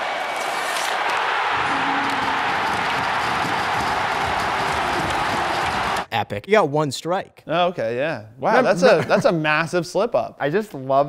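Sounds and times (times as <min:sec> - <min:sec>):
crowd cheering: 0:00.0 - 0:06.1.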